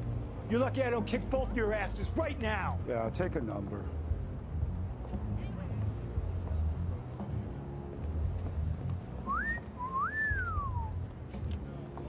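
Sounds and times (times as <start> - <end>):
man wolf whistling: 9.3 - 11.0.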